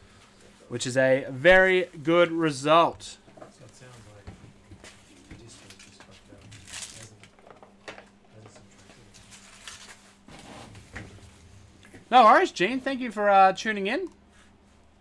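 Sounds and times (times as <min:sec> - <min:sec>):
steady low hum: 0:00.0 - 0:15.0
faint knocks and rustles: 0:03.2 - 0:12.1.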